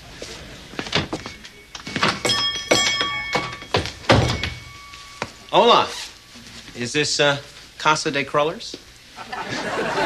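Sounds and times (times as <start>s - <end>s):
door banging shut: 1.9s - 4.8s
door knocks: 2.0s - 4.8s
small bell ringing: 2.2s - 5.7s.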